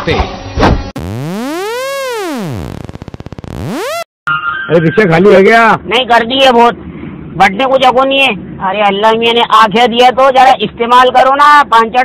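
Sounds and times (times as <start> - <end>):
rapid pulsing stutter: 1.0 - 4.1
electronic tone sweeping in pitch: 1.0 - 4.6.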